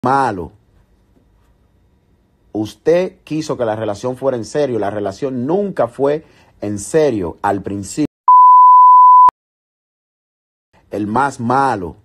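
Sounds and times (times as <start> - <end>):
high electronic censor beep: 8.3 - 9.3.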